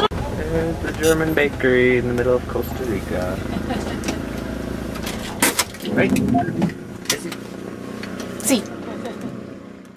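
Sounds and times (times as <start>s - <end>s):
car engine and road noise: 0.0s - 9.9s.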